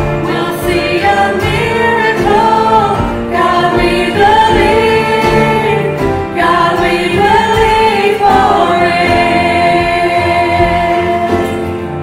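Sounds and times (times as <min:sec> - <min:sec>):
group singing worship song: 0:00.0 - 0:12.0.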